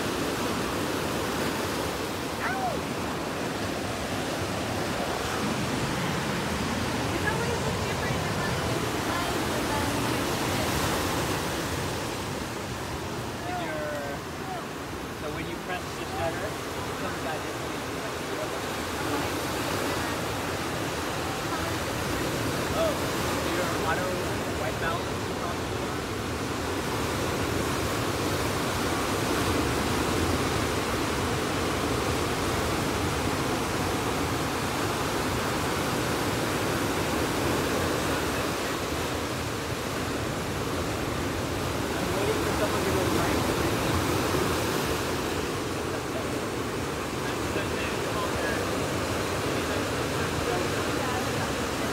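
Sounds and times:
ocean surf on beach: 0.0s - 51.9s.

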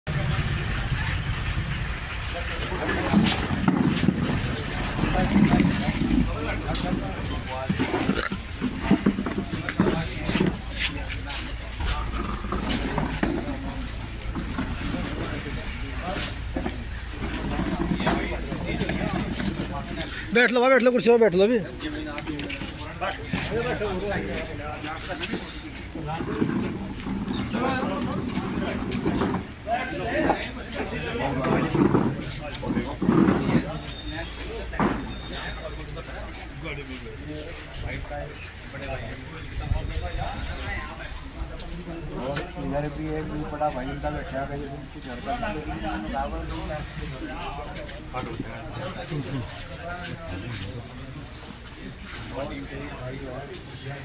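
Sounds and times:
murmur of outdoor gathering: 0.0s - 54.0s
steady low rumble: 0.1s - 8.8s
people talking: 0.1s - 54.0s.

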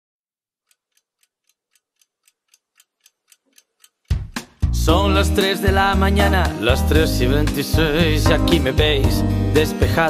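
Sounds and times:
clock ticking fast: 0.6s - 4.9s.

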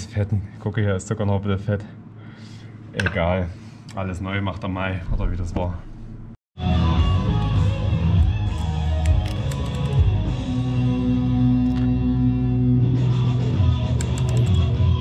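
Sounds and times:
rock music with guitar: 6.6s - 15.0s.

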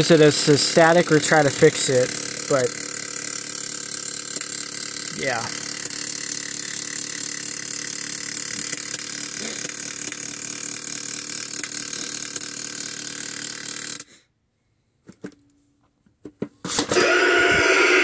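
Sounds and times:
motor and gears whirring: 0.0s - 14.1s, 16.8s - 18.0s.

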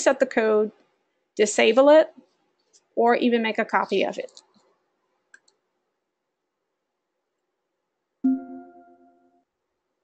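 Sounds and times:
computer mouse clicks: 4.2s - 5.6s.

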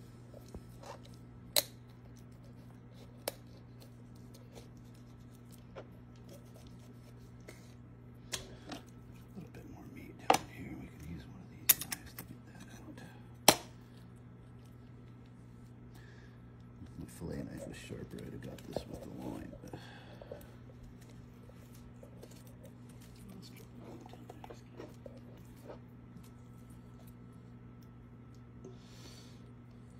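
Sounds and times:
steady low hum: 0.0s - 29.9s.

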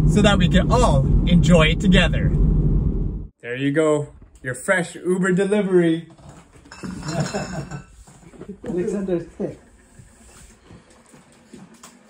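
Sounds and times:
dishes and utensils clinking: 6.5s - 8.0s.

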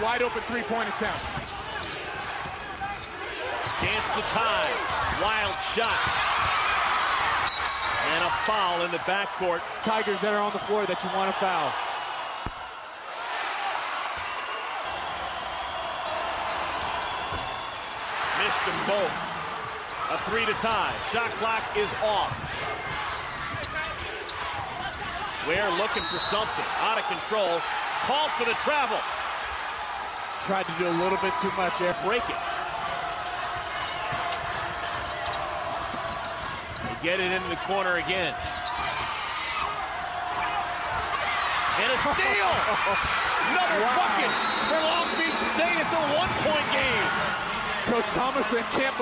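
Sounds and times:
arena crowd noise: 0.0s - 49.0s.

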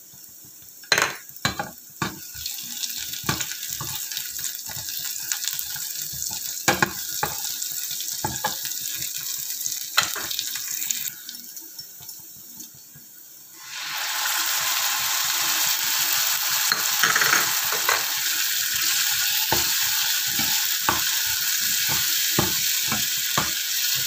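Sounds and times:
food sizzling in oil: 0.0s - 24.0s.

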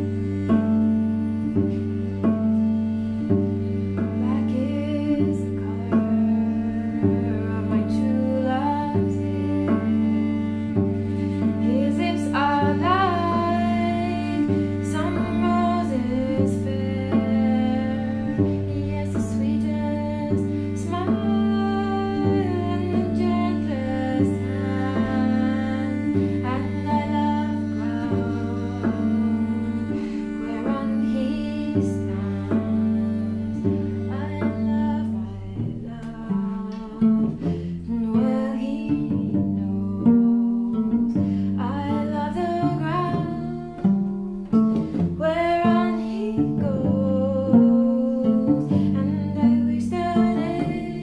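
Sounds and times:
cello bowed melody: 0.0s - 51.0s.

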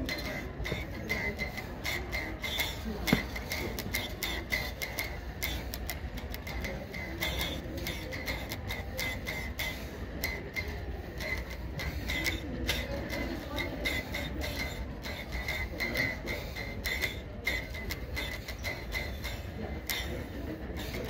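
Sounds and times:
tube zither plucked and strummed: 0.0s - 21.0s.

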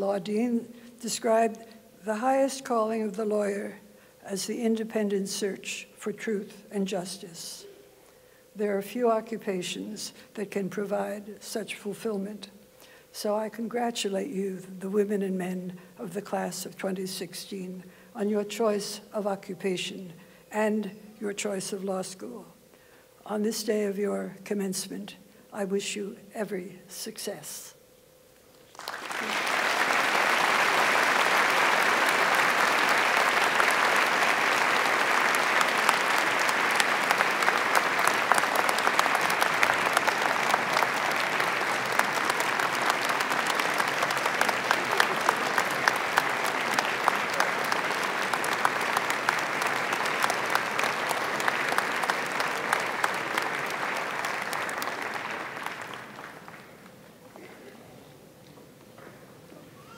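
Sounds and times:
large audience applauding: 28.7s - 57.1s.

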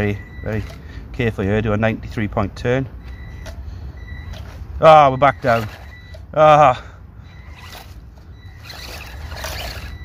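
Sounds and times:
electric motor whine: 7.3s - 10.0s.

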